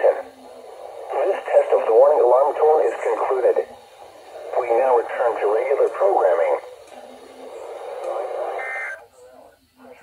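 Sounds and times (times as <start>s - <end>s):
radio speaker hissing: 0.0s - 10.0s
digital data tones: 8.5s - 9.0s.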